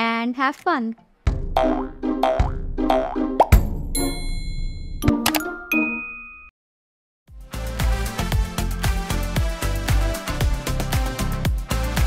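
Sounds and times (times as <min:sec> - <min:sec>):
bouncy cartoon music jingle: 0:01.4 - 0:06.5.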